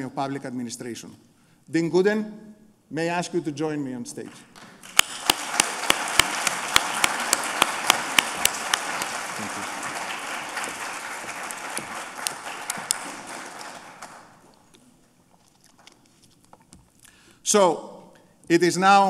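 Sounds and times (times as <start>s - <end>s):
sharp claps close by: 4.2s - 14.4s
audience applauding: 4.4s - 14.5s.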